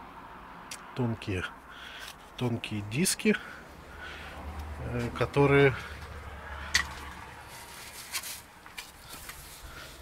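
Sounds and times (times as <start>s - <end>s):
soft rustling: 7.4s - 10.0s.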